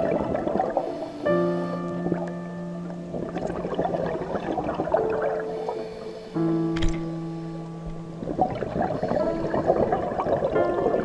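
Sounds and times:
exhaled bubbles underwater: 0:00.0 - 0:06.6, 0:08.0 - 0:11.0.

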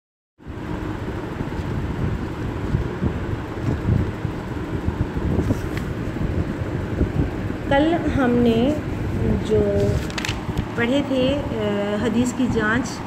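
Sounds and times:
low rumbling background noise: 0:00.4 - 0:13.0.

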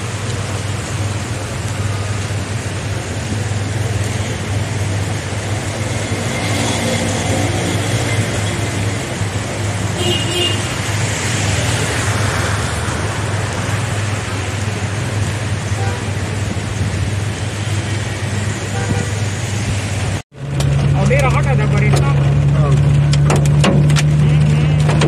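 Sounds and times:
tyres hissing on wet road: 0:00.0 - 0:23.2.

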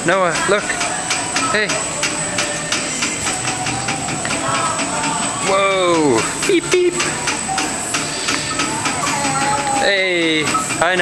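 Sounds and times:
carousel ride figures clicking: 0:00.0 - 0:11.0
steady high whine: 0:00.0 - 0:11.0.

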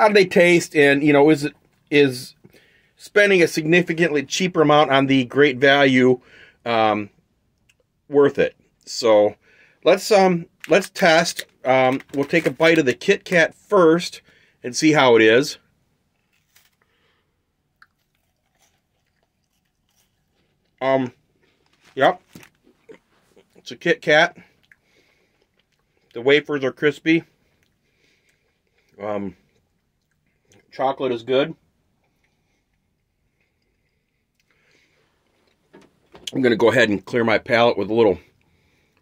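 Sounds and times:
chewing crisp wafer: 0:17.6 - 0:23.6, 0:24.4 - 0:26.2, 0:27.4 - 0:30.7, 0:32.0 - 0:35.6.

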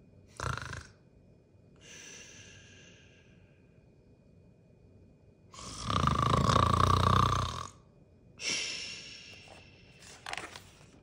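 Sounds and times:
man imitating snoring: 0:00.3 - 0:01.0, 0:05.6 - 0:07.8.

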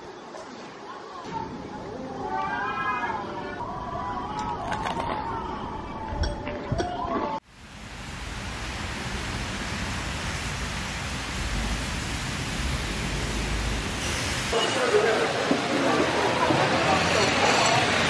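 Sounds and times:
heavy rain on street: 0:07.4 - 0:18.0.

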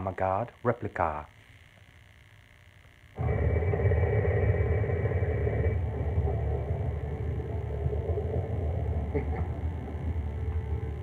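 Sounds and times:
deep steady rumble: 0:03.2 - 0:11.0.

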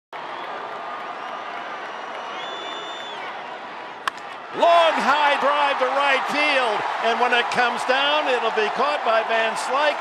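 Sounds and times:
stadium crowd din: 0:00.1 - 0:10.0.

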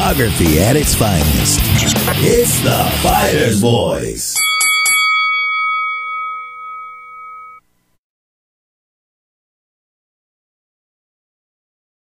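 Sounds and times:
struck bell ringing: 0:04.4 - 0:07.7.

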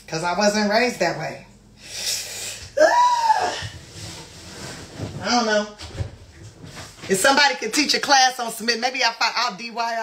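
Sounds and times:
soft knocks and rustling: 0:03.6 - 0:07.3.

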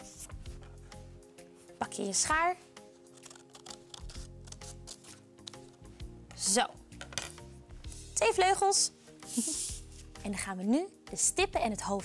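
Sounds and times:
background music: 0:00.0 - 0:12.0
scissors snipping paper: 0:03.0 - 0:05.8.

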